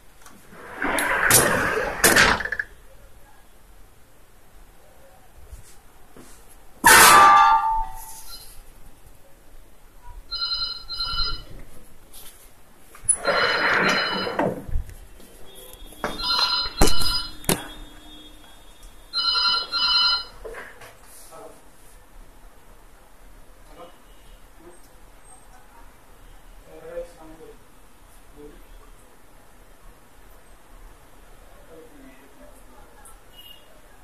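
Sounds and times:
loud scraping: 0:00.4 - 0:02.7
telephone double ring: 0:10.3 - 0:11.6, 0:13.2 - 0:14.6, 0:16.0 - 0:18.2, 0:19.2 - 0:20.4.

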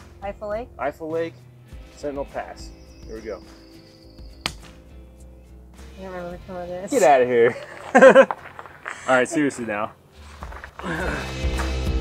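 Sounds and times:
soft background music: 0:00.0 - 0:12.0.

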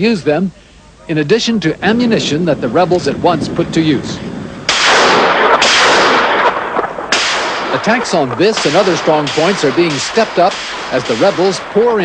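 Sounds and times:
heavy weapon blasts: 0:04.7 - 0:11.9.

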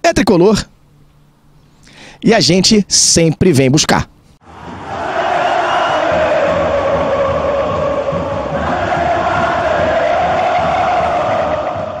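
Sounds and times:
crowd chanting in unison: 0:04.4 - 0:12.0.

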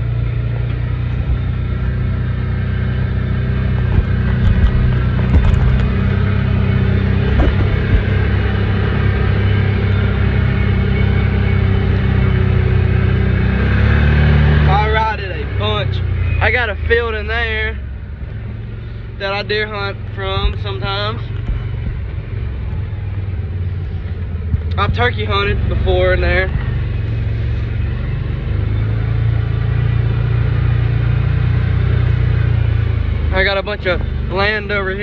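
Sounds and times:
vehicle engine running: 0:00.0 - 0:35.0
sharp knocks from cab: 0:03.8 - 0:06.2, 0:07.2 - 0:08.3.

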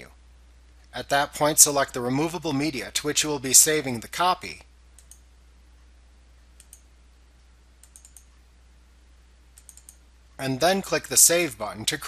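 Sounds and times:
computer mouse clicks: 0:05.0 - 0:05.3, 0:06.6 - 0:06.9, 0:07.8 - 0:08.4, 0:09.6 - 0:10.0.

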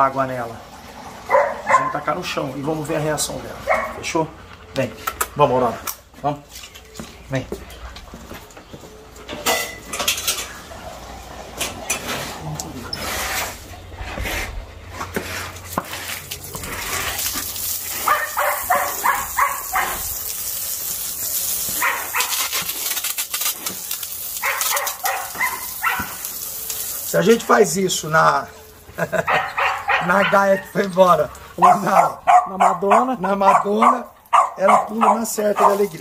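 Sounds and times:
dog barking: 0:01.3 - 0:02.0, 0:03.6 - 0:04.0, 0:18.0 - 0:20.1, 0:21.8 - 0:22.4, 0:24.4 - 0:26.2, 0:29.2 - 0:30.7, 0:31.6 - 0:35.9
hose spraying water on concrete: 0:11.9 - 0:36.0.

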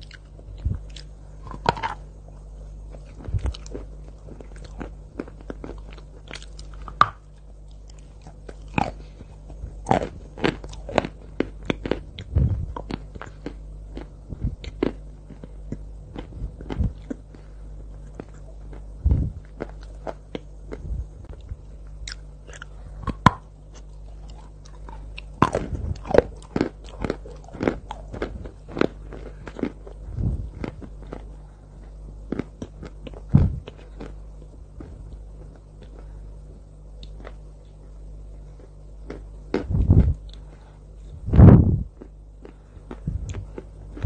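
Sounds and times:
crunchy chewing: 0:00.0 - 0:41.2, 0:41.8 - 0:44.0
faint low hum: 0:00.0 - 0:44.0.

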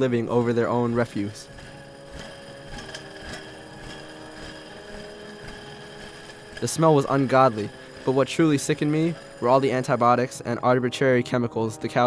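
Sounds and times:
conveyor machinery hum: 0:00.0 - 0:12.0.

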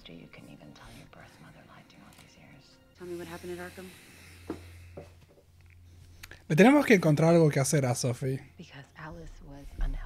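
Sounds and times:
faint whispery dialogue: 0:00.0 - 0:04.8, 0:06.0 - 0:10.0
tv music: 0:00.0 - 0:10.0.

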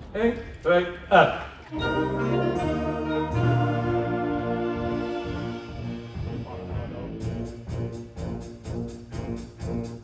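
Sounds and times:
wind orchestra playing: 0:01.7 - 0:10.0.

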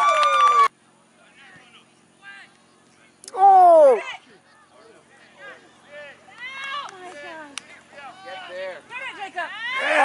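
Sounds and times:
players and spectators shouting: 0:03.3 - 0:10.0.

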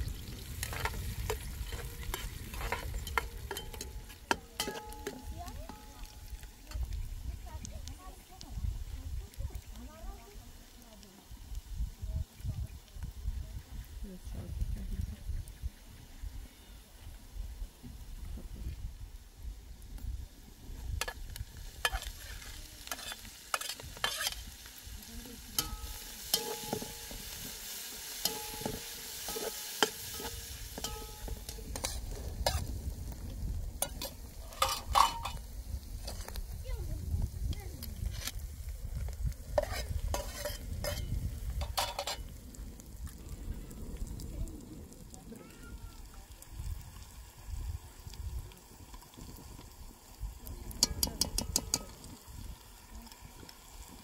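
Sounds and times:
food sizzling in hot oil: 0:00.0 - 0:14.0, 0:17.0 - 0:54.0
metal spoon scraping steel pot: 0:00.6 - 0:06.9, 0:21.8 - 0:24.5, 0:25.6 - 0:27.5, 0:28.1 - 0:32.6, 0:33.8 - 0:35.4, 0:39.6 - 0:42.3.

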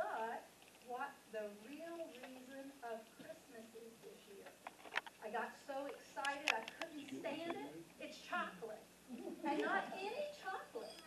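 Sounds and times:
woman talking into a microphone: 0:00.0 - 0:04.6, 0:05.2 - 0:08.9, 0:09.5 - 0:11.0.

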